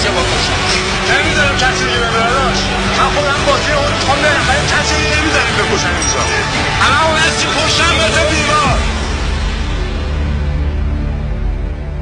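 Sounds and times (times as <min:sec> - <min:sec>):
voices talking: 0:00.0 - 0:08.9
steady low drone: 0:00.0 - 0:12.0.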